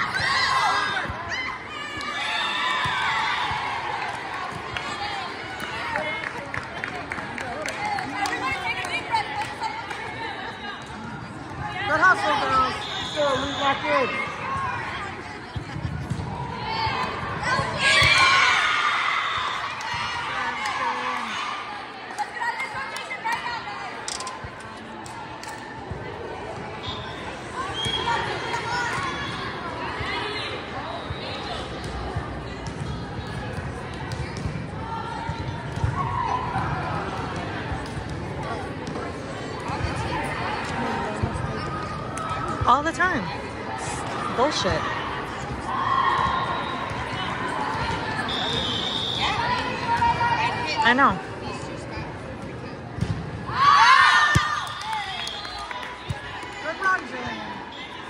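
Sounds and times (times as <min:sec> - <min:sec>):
voices chattering and calling out: 0:00.0 - 0:58.0
balls bouncing and being hit: 0:14.4 - 0:18.5, 0:31.7 - 0:44.7, 0:52.3 - 0:53.6, 0:54.2 - 0:55.1.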